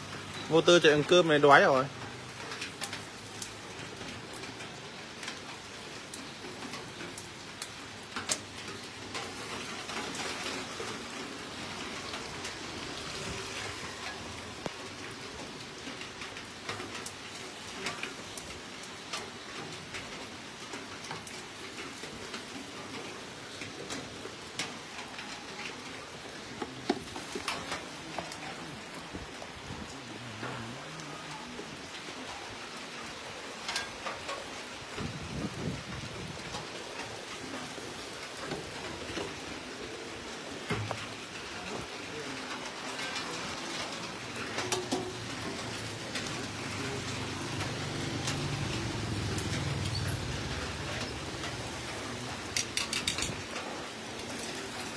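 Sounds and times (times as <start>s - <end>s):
rain on pavement and roof: 0.0s - 54.9s.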